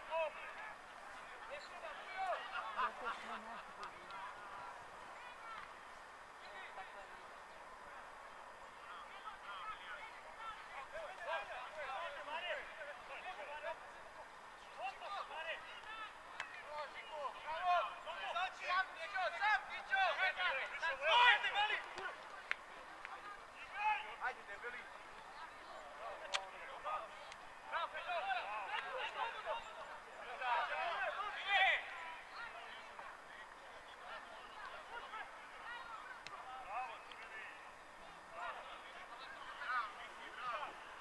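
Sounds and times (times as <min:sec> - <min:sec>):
voices shouting outdoors: 0:00.0 - 0:41.0.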